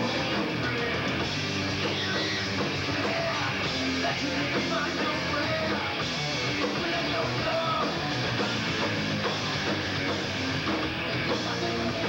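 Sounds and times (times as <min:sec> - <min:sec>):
drums: 0:00.0 - 0:12.0
electric guitar: 0:00.0 - 0:12.0.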